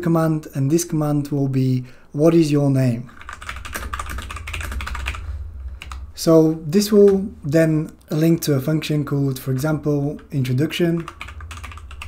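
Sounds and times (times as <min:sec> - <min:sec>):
computer keyboard typing: 0:03.1 - 0:05.2, 0:09.5 - 0:12.0.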